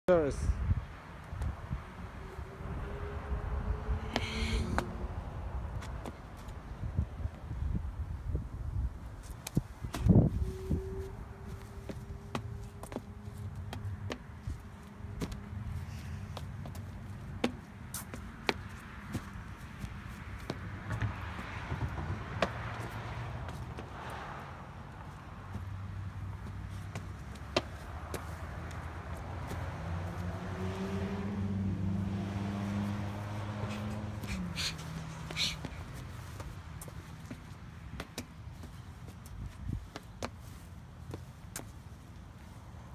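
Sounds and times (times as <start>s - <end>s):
car engines passing: 0.4s - 8.3s, 9.1s - 42.9s
rising humming tones: 10.0s - 14.0s.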